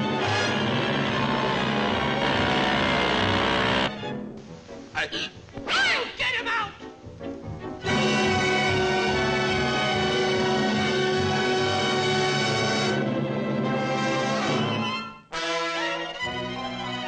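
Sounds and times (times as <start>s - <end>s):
orchestral cartoon music: 0.0s - 17.0s.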